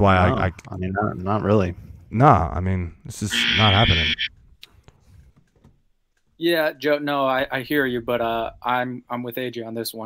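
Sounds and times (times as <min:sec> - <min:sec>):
man's voice: 0:03.3 - 0:04.2.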